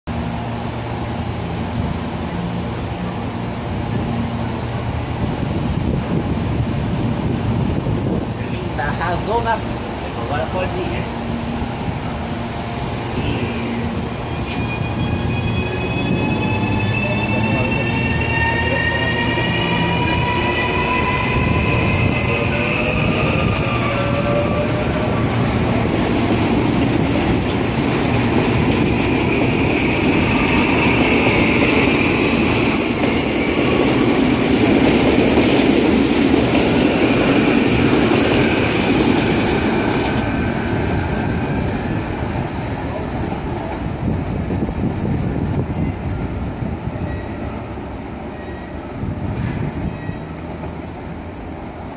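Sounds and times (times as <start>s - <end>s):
train wheels rumbling on rail: 0.1s - 51.9s.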